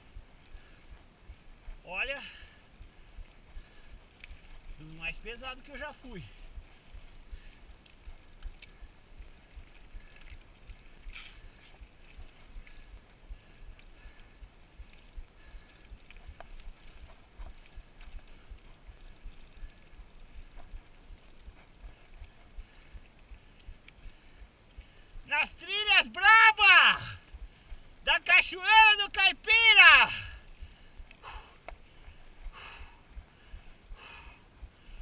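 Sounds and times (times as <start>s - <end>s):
bike tyres rumbling on dirt: 0.0s - 25.6s
bike clicks and rattles: 6.3s - 25.0s.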